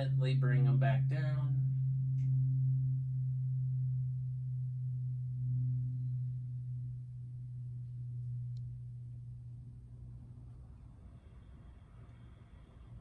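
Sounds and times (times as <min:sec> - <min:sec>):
low-pitched hum-like tone: 0:00.0 - 0:13.0.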